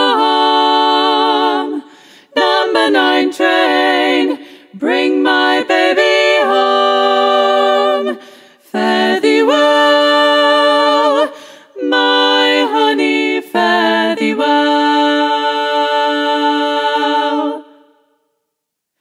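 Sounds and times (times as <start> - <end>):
women singing a cappella harmony: 0.0 - 18.2.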